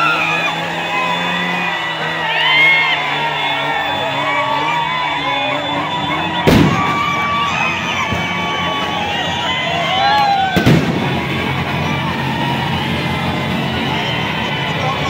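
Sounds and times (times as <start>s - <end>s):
crowd cheering and whooping: 0.0s - 15.0s
firecracker bangs: 6.4s - 7.4s, 10.5s - 11.6s.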